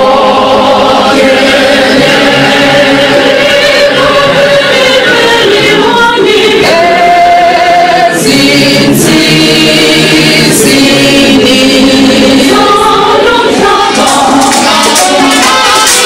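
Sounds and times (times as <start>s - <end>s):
choir singing held notes: 0.0s - 16.0s.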